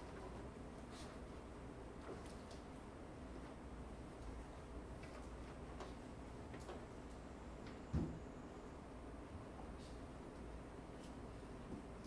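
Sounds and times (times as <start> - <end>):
low room hum: 0.0 - 12.0.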